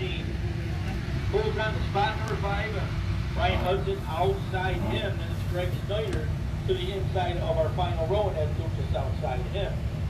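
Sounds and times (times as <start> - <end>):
race car engines rumbling: 0.0 - 10.0
indistinct voices: 3.4 - 6.2.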